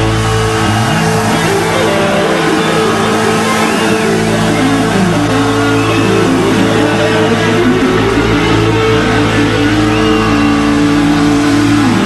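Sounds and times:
electric guitar chords: 0:00.0 - 0:12.0
rock band playing: 0:00.0 - 0:12.0.

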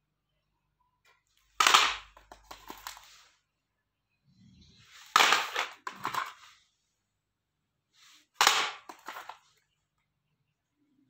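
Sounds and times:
plastic cassette cases clacking: 0:05.1 - 0:06.4, 0:08.4 - 0:09.4.

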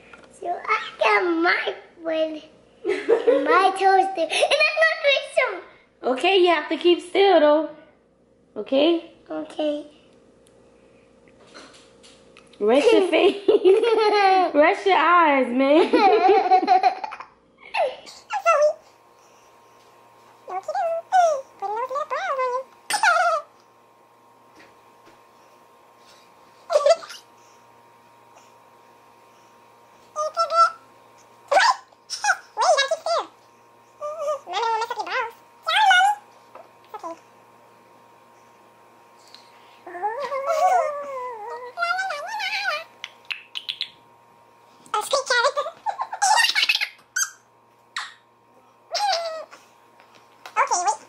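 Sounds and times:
child making wavering sounds: 0:20.5 - 0:23.5, 0:34.0 - 0:36.2, 0:39.8 - 0:43.0, 0:48.9 - 0:49.6, 0:50.6 - 0:51.0.

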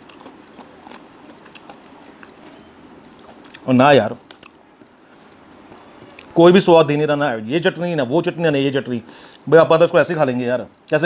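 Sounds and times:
chewing crunchy food: 0:00.0 - 0:06.4.

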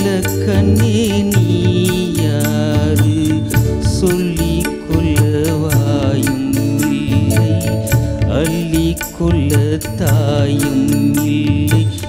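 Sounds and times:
keyboard and guitar melody: 0:00.0 - 0:12.0
tabla and drum kit beat: 0:00.0 - 0:12.0.

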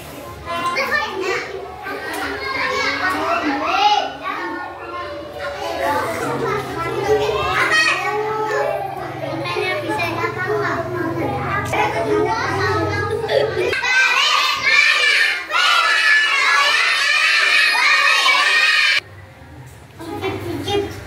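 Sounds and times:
young children chattering: 0:00.0 - 0:19.2, 0:20.0 - 0:21.0.

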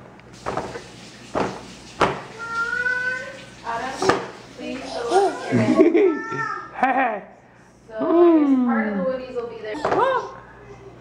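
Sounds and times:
sharp knocks: 0:01.4 - 0:02.3
baby cooing: 0:04.8 - 0:06.7.

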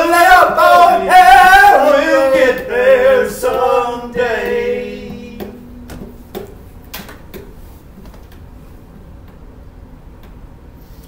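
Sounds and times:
voices singing folk song: 0:00.0 - 0:06.4.

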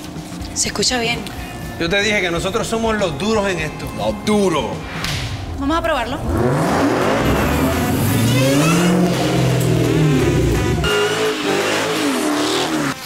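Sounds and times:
car engine revving: 0:05.4 - 0:13.0.

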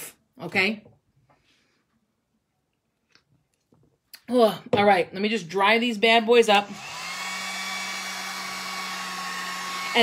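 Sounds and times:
heat gun blowing: 0:06.5 - 0:10.0.

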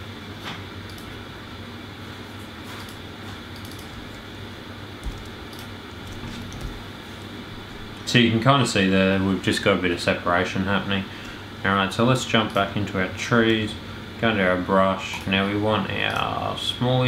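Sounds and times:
low room hum: 0:00.0 - 0:17.0
computer mouse clicks: 0:00.9 - 0:01.2, 0:02.8 - 0:04.0, 0:05.0 - 0:06.8.

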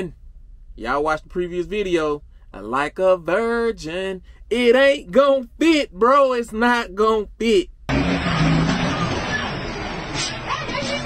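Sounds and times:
truck engine rumbling: 0:07.7 - 0:11.0.

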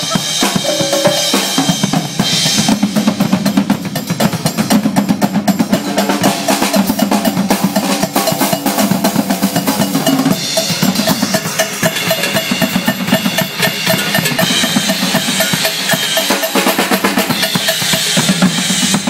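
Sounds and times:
drum kit and congas playing: 0:00.0 - 0:19.0
higher drum tone repeating: 0:00.4 - 0:02.1.

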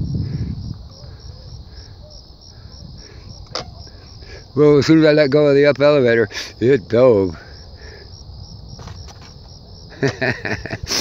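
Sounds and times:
cricket trilling: 0:00.0 - 0:11.0.

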